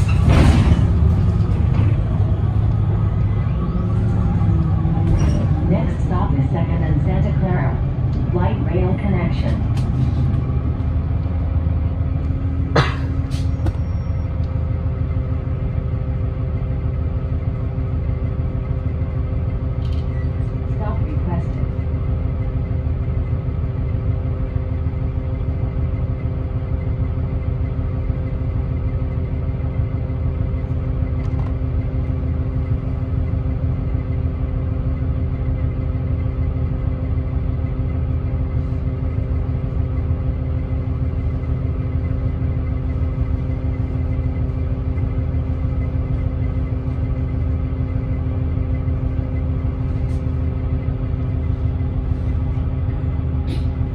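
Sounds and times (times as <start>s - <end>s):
bus engine low rumble: 0.0s - 53.9s
steady hum tones: 0.0s - 53.9s.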